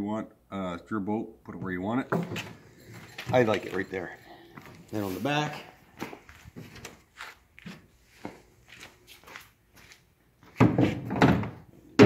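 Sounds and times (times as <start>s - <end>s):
footsteps: 1.6s - 11.1s.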